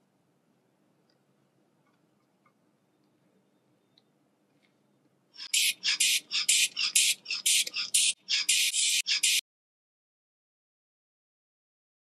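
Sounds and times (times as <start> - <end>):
hand bulb pumping air: 5.4 - 9.4.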